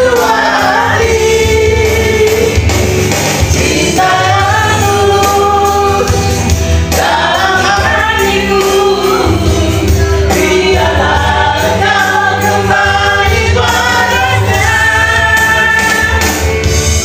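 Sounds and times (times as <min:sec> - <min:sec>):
backing track: 0:00.0 - 0:17.0.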